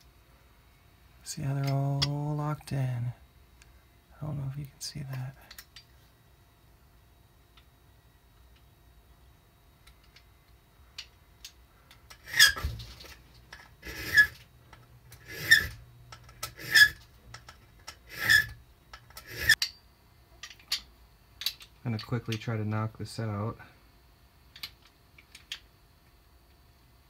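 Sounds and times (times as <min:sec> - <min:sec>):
file rasping on metal key: 0:13.8 - 0:14.3, 0:15.2 - 0:15.8, 0:16.4 - 0:17.0, 0:18.1 - 0:18.6, 0:19.2 - 0:19.6.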